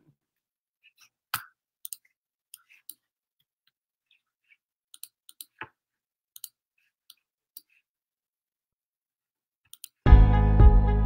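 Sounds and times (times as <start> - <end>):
computer clicks: 9.7 - 10.0.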